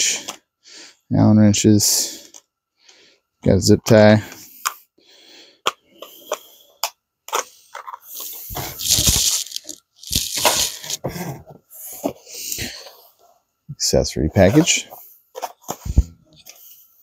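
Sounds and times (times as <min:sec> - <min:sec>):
cardboard box scraping and rustling: 0:08.6 - 0:11.0.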